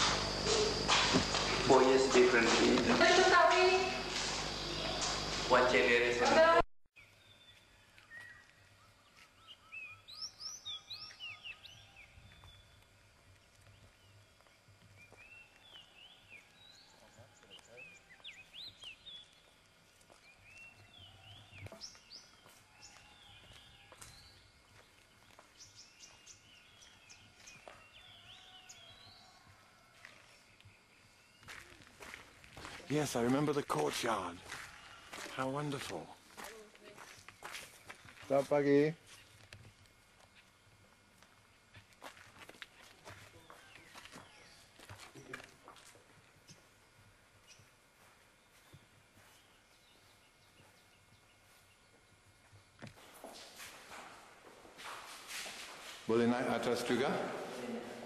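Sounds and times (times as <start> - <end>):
footsteps of people walking: 0.0 - 6.6, 7.4 - 9.6, 10.9 - 58.0
faint outdoor background noise: 0.0 - 58.0.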